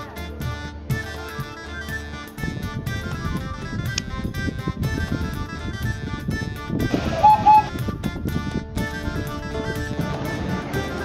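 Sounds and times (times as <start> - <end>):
background music of held chords: 0.0 - 11.0.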